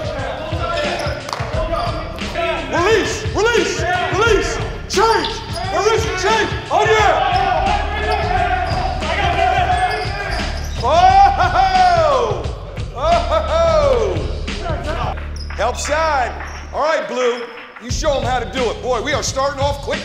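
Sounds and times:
sneakers squeaking on court: 0:00.6 - 0:02.4, 0:05.0 - 0:06.1, 0:07.3 - 0:10.9.

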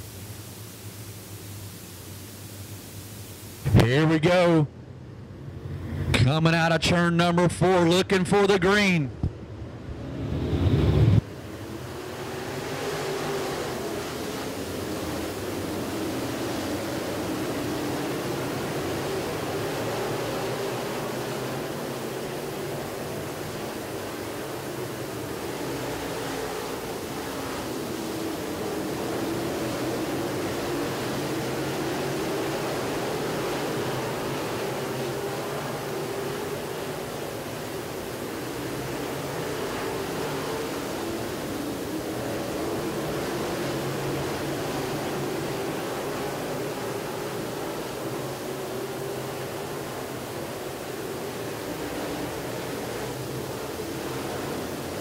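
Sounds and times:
race car engines: 0:03.6 - 0:55.0.

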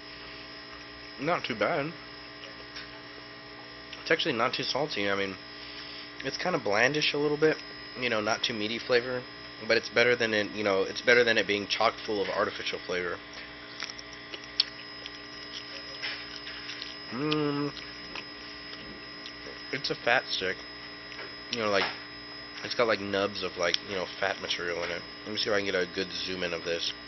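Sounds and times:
electrical mains hum: 0:00.0 - 0:27.0.

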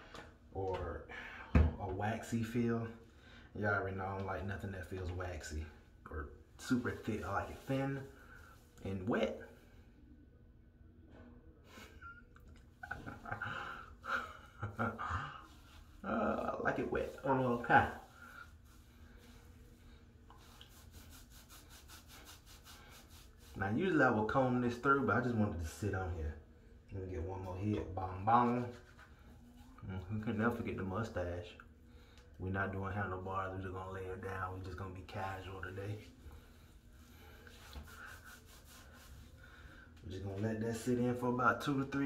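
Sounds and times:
hands scrubbing wet beard: 0:06.6 - 0:09.1, 0:12.4 - 0:26.0, 0:34.4 - 0:41.9
fingers rubbing wet beard: 0:20.3 - 0:24.0, 0:36.4 - 0:39.4.

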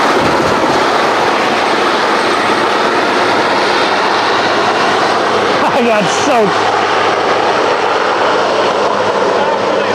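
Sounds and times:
helicopter engines and rotor: 0:00.0 - 0:09.9.

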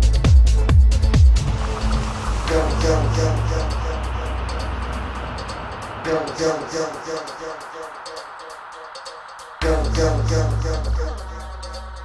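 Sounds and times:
low droning bass: 0:00.0 - 0:06.4, 0:09.6 - 0:12.0
high ticking beat: 0:00.0 - 0:12.0.

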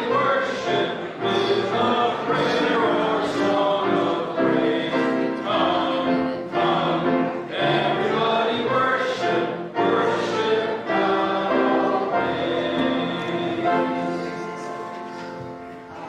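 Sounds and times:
church choir singing: 0:00.0 - 0:16.0.

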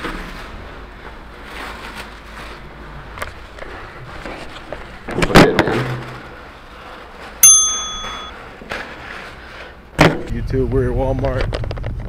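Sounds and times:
bell-like ding: 0:07.4 - 0:08.4.

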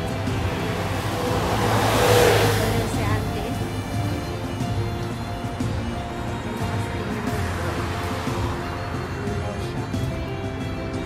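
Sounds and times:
road vehicle passing: 0:00.0 - 0:11.0.

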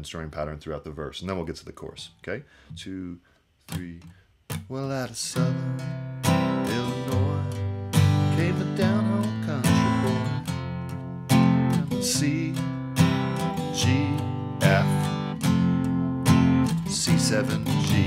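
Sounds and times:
acoustic guitar strumming: 0:04.5 - 0:18.0.

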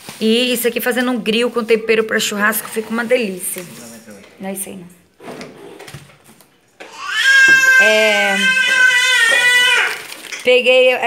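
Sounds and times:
child's high-pitched squeal: 0:06.9 - 0:10.1.

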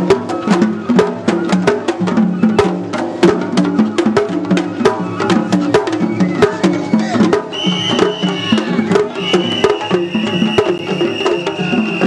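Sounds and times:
drum and wood strikes: 0:00.0 - 0:12.0.

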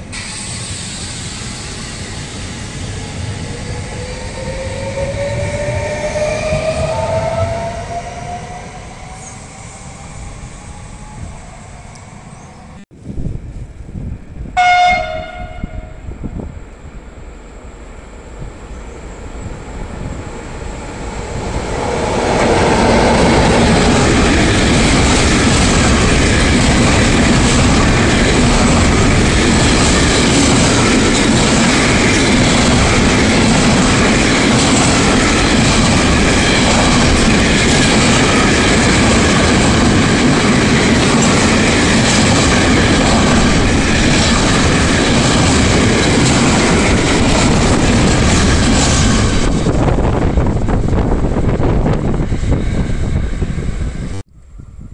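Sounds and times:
train horn blast: 0:14.6 - 0:16.1.

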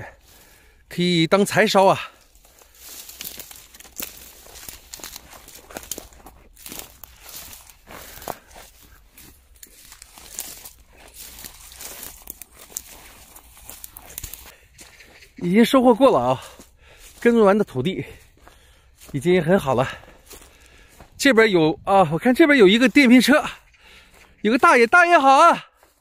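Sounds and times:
footsteps through dry weeds: 0:00.0 - 0:26.0.

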